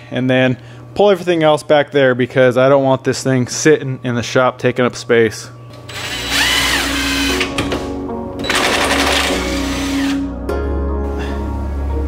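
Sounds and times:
background music: 2.6 - 12.0.

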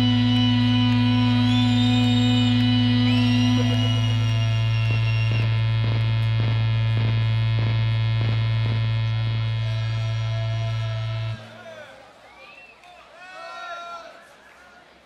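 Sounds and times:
high tones sliding upward: 0.0 - 5.6
loud low electronic hum drone: 0.0 - 11.6.

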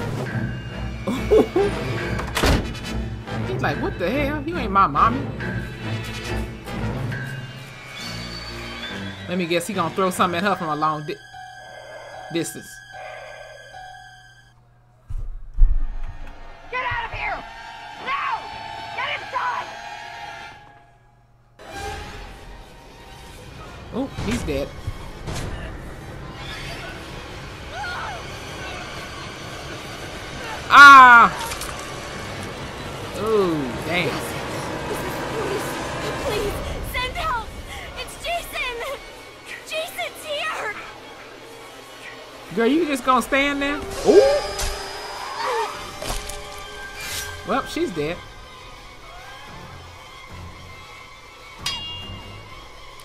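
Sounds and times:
soft film music: 0.0 - 15.1, 40.8 - 53.0
person shouting cry: 30.7 - 31.4, 44.0 - 44.5.

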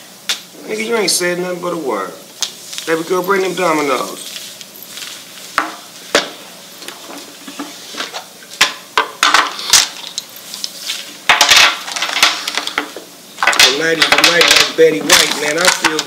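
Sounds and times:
dominoes clattering: 11.3 - 16.0.

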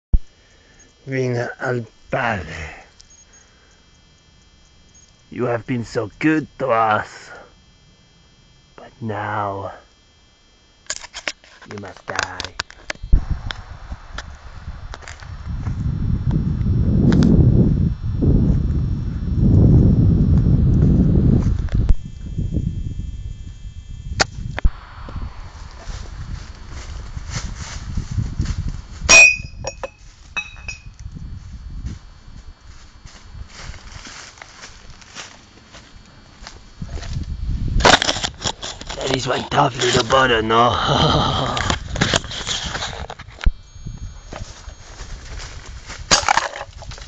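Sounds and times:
low rumble: 13.0 - 29.5
air rifle shot hitting glass bottle: 29.1 - 29.8.

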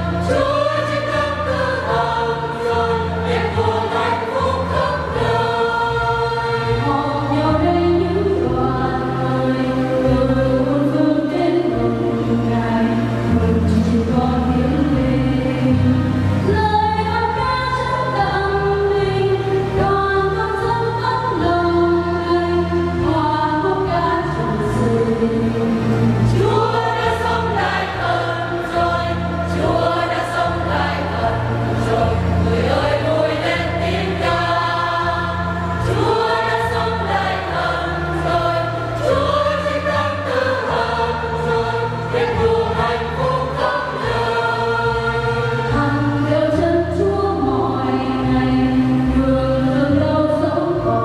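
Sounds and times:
choir singing a hymn: 0.0 - 51.0.

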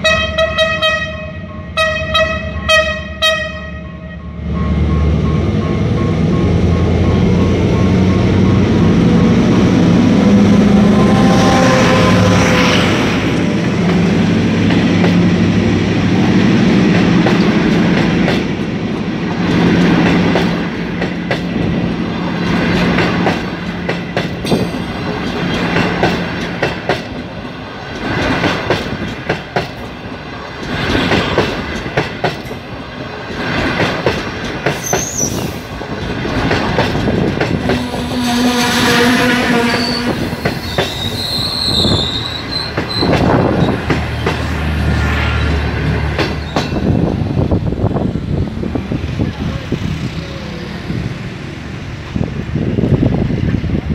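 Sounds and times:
train wheels clacking over rail joints: 16.8 - 47.6
high wheel squeals: 34.8 - 35.6, 37.8 - 43.8.

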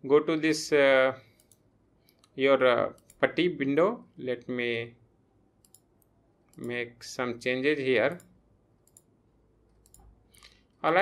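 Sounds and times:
man speaking: 0.0 - 1.2, 2.4 - 5.0, 6.6 - 8.2
computer mouse clicks: 1.3 - 3.2, 5.6 - 6.8, 8.1 - 9.1, 9.7 - 10.7.

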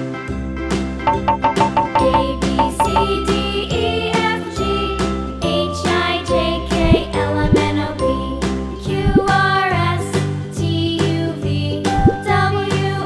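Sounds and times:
children's music with steady beat: 1.1 - 13.0.

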